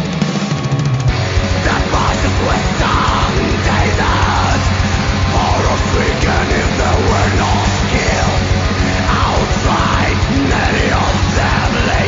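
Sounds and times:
fast bass-drum beats: 0:00.0 - 0:12.0
harsh shouted vocals: 0:01.1 - 0:12.0.

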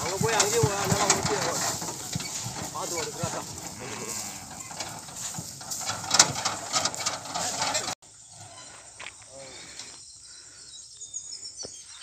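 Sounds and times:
cart wheels and hooves through grass: 0:00.0 - 0:09.2.

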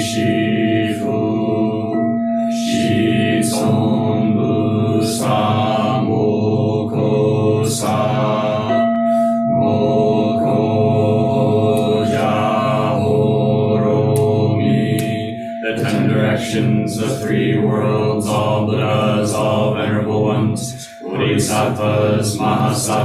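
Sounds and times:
group chanting in unison: 0:00.0 - 0:23.0.

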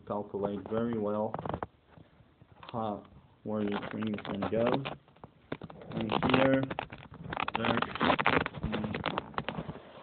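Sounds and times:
scuffs and clicks of tablet case: 0:03.6 - 0:10.0.

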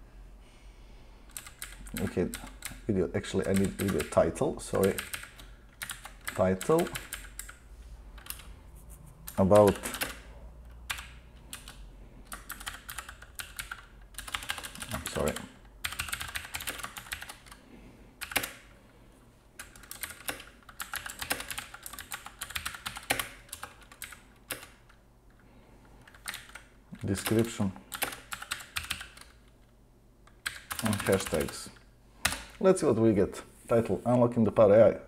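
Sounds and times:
typing on computer keyboard: 0:01.3 - 0:07.6, 0:08.2 - 0:08.5, 0:09.3 - 0:10.3, 0:10.9 - 0:17.6, 0:18.2 - 0:18.6, 0:19.6 - 0:25.0, 0:26.0 - 0:29.6, 0:30.3 - 0:32.6.

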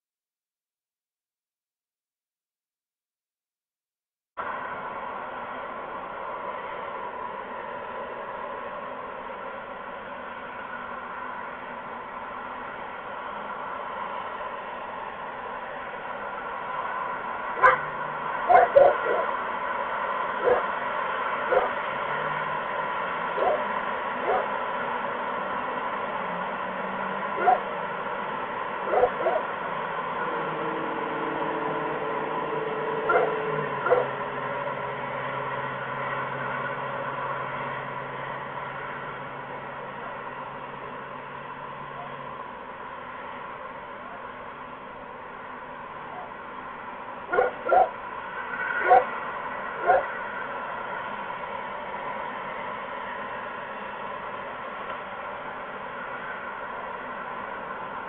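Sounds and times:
faint low drone: 0:04.4 - 0:58.0
sharp animal calls: 0:23.4 - 0:24.5, 0:28.9 - 0:29.5, 0:47.3 - 0:48.0.

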